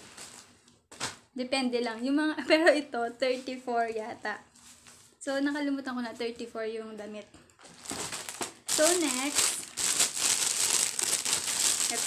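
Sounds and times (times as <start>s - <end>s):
plastic packaging crinkling: 0.0s - 1.2s, 7.5s - 12.0s.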